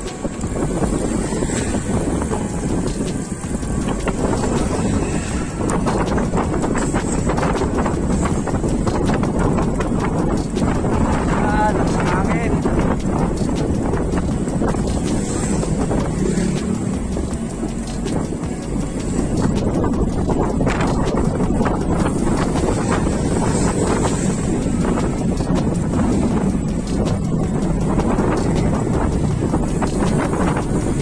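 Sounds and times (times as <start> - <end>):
bicycle road noise: 0.0 - 31.0
wind buffeting microphone: 0.0 - 31.0.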